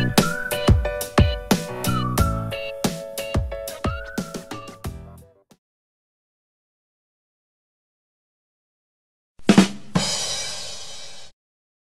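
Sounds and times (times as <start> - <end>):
drum hits: 0.7 - 1.8, 9.4 - 11.1
cymbal crash: 9.6 - 11.4.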